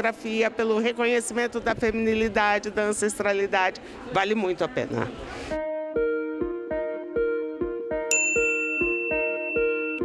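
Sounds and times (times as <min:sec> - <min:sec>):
bright chime ringing: 0:08.1 - 0:10.0.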